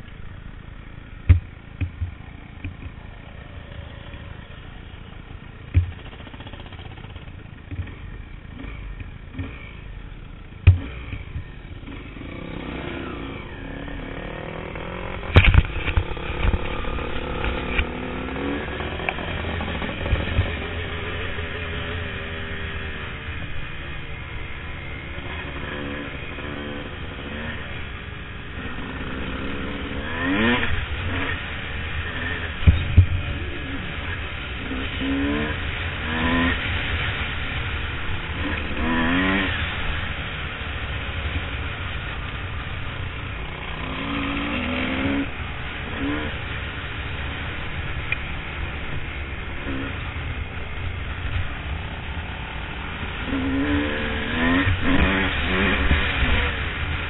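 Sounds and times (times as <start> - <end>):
dirt bike engine revving: 0.0 - 9.9, 10.6 - 40.9, 43.4 - 46.7, 49.1 - 51.4, 52.8 - 57.0
bike knocking over bumps: 1.2 - 3.0, 10.6 - 10.9.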